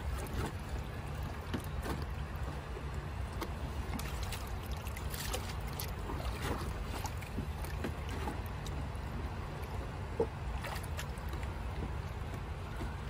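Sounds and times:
small water splashes: 0.0s - 13.0s
steady low rumble: 0.0s - 13.0s.

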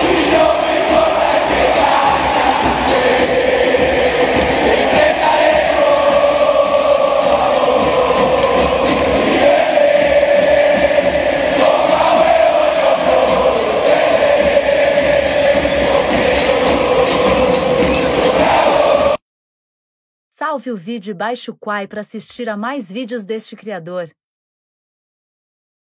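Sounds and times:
stadium crowd chanting: 0.0s - 19.2s
steady rhythmic beat: 0.0s - 19.2s.

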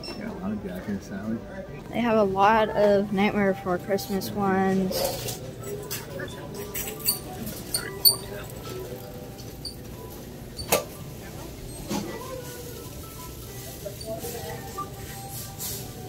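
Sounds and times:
faint background music: 0.0s - 16.0s
indistinct distant voices: 2.8s - 16.0s.

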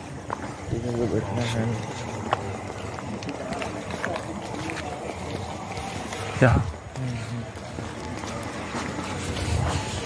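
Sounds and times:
footsteps on paved ground: 0.0s - 10.0s
indistinct chatter: 0.0s - 10.0s.

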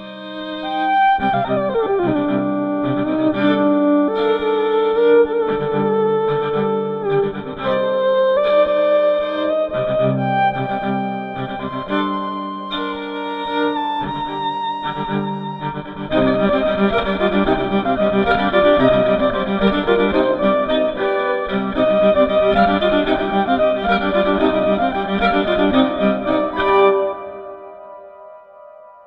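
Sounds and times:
electric violin melody: 0.0s - 28.9s.

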